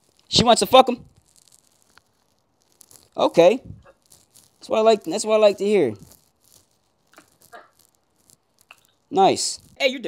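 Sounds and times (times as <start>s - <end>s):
phone rustles and clicks: 0.0s - 9.8s.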